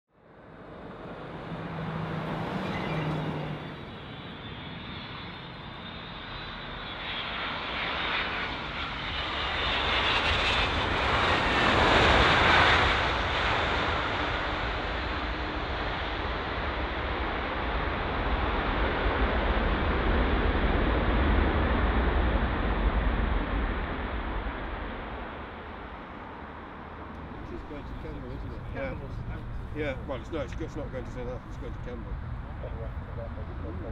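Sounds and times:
jet engines roaring: 0:00.3 - 0:33.9
falling whine: 0:00.7 - 0:07.0, 0:19.7 - 0:33.9
long low rumble: 0:17.8 - 0:33.9.

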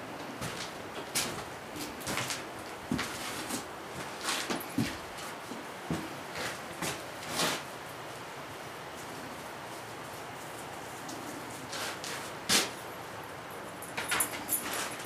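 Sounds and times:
background hiss: 0:00.0 - 0:15.0
footsteps on wooden floor: 0:02.1 - 0:05.3.

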